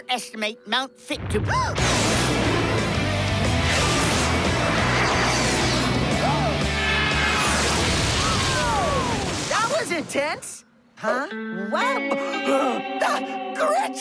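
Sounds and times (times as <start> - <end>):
background music: 0.0 - 9.0, 11.0 - 14.0
cartoon jet roaring rumble: 1.6 - 9.2.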